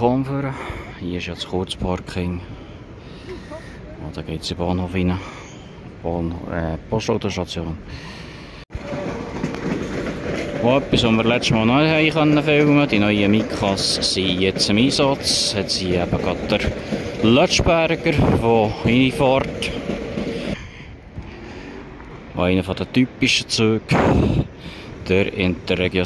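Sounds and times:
outdoor background noise: 0.0s - 26.0s
train wheels rumbling on rails: 8.0s - 26.0s.

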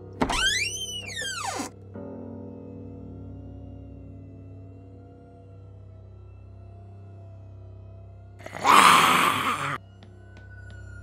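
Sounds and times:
eerie background music: 1.4s - 11.0s
harsh zombie screech: 8.4s - 9.8s.

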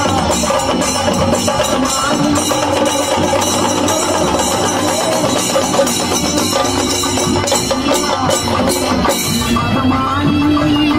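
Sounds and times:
loud music with drums: 0.0s - 10.9s.

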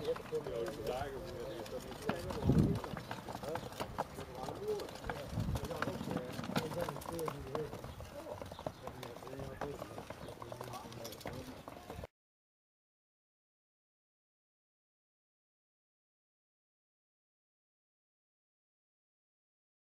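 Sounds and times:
cart wheels rolling over bricks: 0.0s - 12.1s
men talking: 0.0s - 12.1s.

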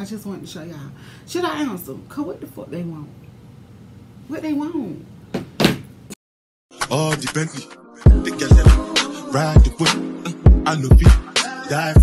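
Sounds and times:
rap music: 6.7s - 12.0s.

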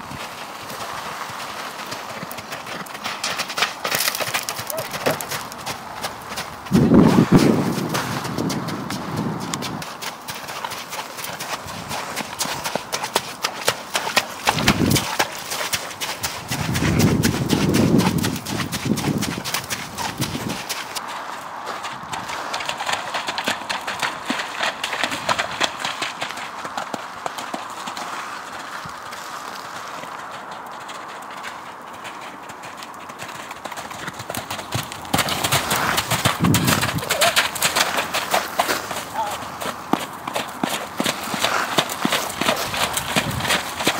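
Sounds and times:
horse hoofbeats on soft sand: 0.0s - 43.9s.

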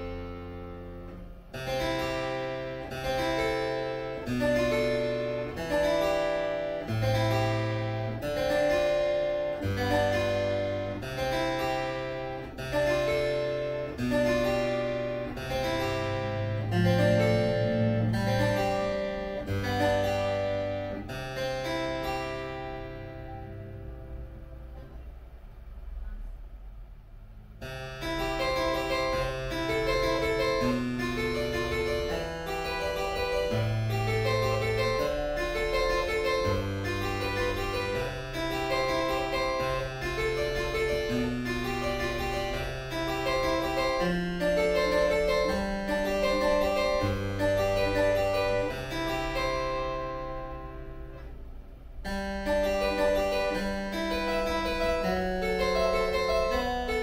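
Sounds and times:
harpsichord playing chords: 0.0s - 25.4s, 27.5s - 57.0s.

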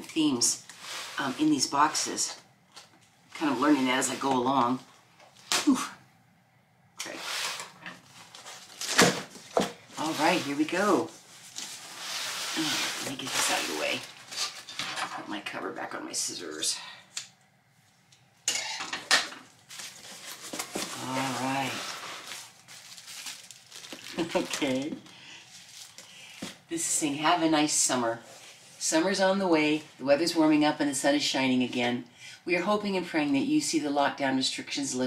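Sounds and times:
cardboard and plastic rustling: 7.1s - 15.1s, 19.2s - 26.6s.

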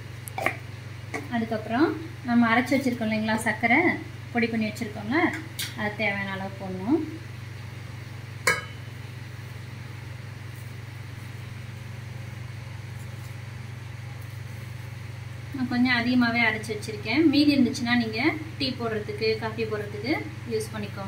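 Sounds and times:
steady low hum: 0.0s - 21.0s
steel tin knocking on steel bowl: 8.5s - 8.8s
hands mixing dry flakes: 10.4s - 15.0s.

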